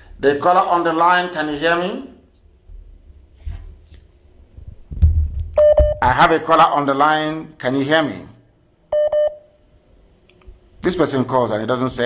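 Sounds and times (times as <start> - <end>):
short electronic beep: 5.6 - 6.0.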